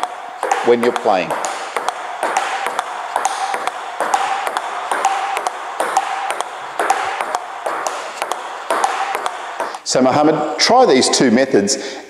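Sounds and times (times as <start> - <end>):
table tennis ball pinging: 0.0 - 9.9.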